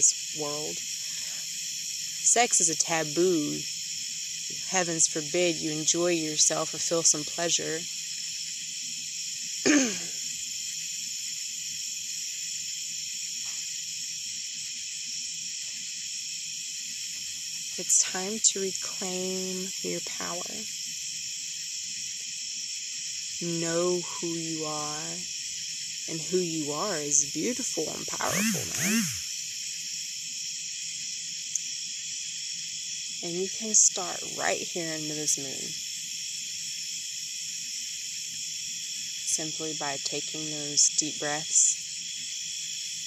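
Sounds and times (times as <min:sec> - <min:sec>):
night insects chirping: 0:00.0 - 0:43.0
person clearing throat: 0:09.7 - 0:10.2.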